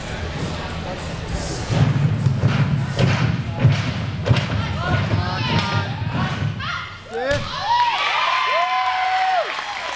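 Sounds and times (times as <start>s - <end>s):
murmur of crowd voices: 0.0s - 7.4s.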